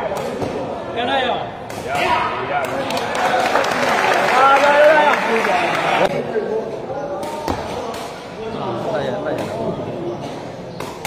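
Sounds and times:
chatter of spectators: 0:00.0 - 0:11.0.

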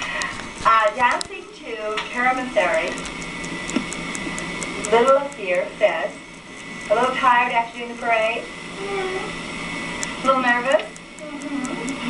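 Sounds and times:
tape hiss and hum: 0:00.0 - 0:12.0
thin steady whine: 0:00.0 - 0:12.0.

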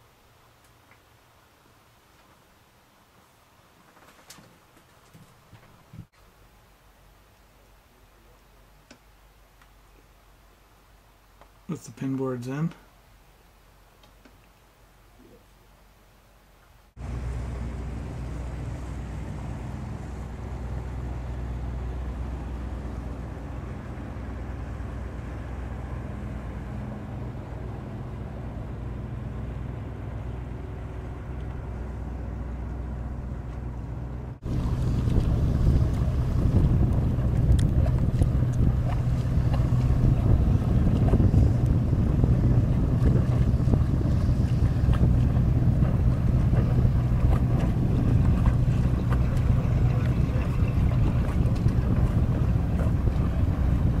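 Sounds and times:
boat engine running: 0:17.0 - 0:54.0
wind on microphone: 0:34.4 - 0:54.0.

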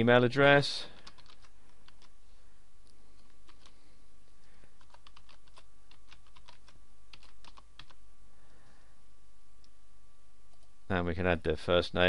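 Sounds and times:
faint steady hum: 0:00.0 - 0:12.0
typing on keyboard: 0:01.0 - 0:02.1, 0:04.8 - 0:08.0.

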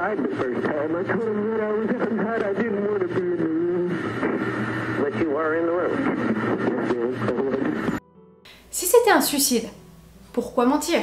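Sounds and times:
steady low hum: 0:00.0 - 0:09.1.

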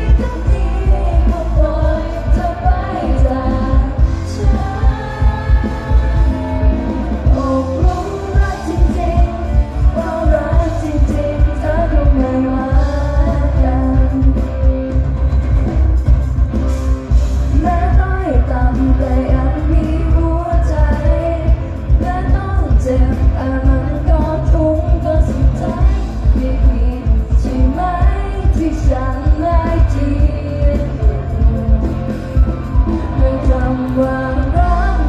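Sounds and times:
live pop band with singers: 0:00.0 - 0:35.0.

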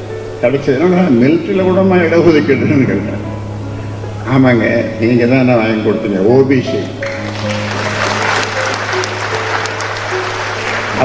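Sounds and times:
quiet background music: 0:00.0 - 0:11.0
crowd applause: 0:07.0 - 0:11.0
crowd noise: 0:07.0 - 0:11.0.

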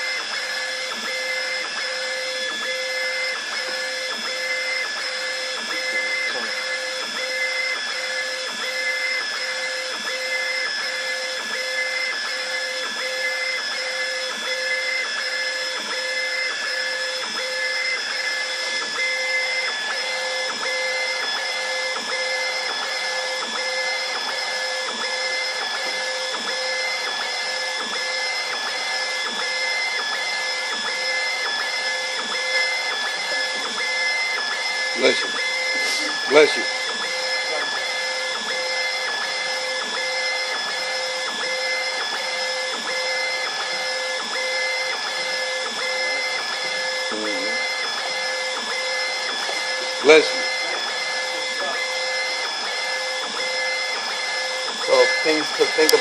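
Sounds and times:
pulsing machine whine: 0:00.0 - 0:56.0.

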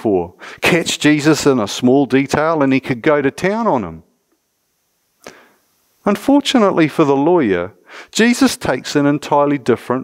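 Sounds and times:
sharp intake of breath: 0:00.3 - 0:00.6, 0:05.2 - 0:05.7, 0:07.8 - 0:08.2.

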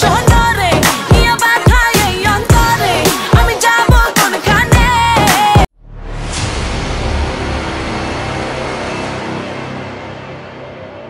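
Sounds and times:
deep rumble: 0:05.8 - 0:09.6
dense rushing whoosh: 0:05.8 - 0:10.5.

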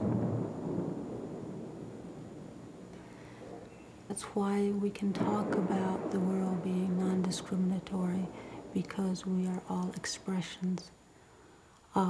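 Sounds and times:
thunder rumbling: 0:00.0 - 0:11.7.

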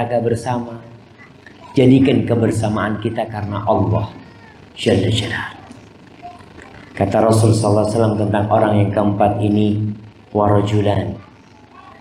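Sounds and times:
man speaking into a microphone: 0:00.0 - 0:05.8, 0:06.8 - 0:11.2.

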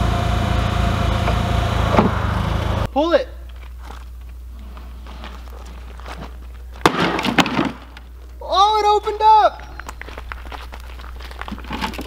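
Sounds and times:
rustles: 0:03.4 - 0:08.5, 0:09.7 - 0:12.0
footsteps crunching on gravel: 0:03.5 - 0:07.2, 0:09.6 - 0:12.0.

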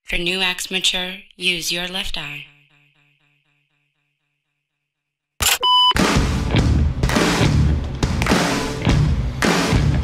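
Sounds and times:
electronic beep: 0:05.4 - 0:06.0.

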